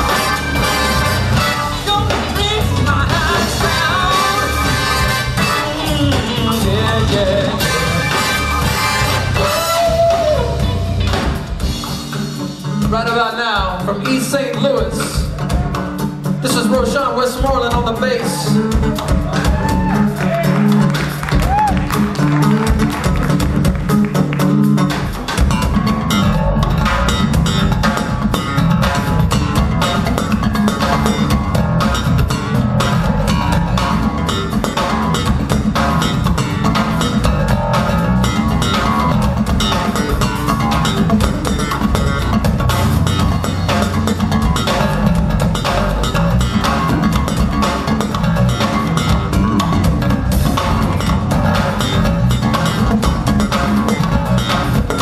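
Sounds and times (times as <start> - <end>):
drum kit: 0.0 - 55.0
electric bass guitar: 0.0 - 55.0.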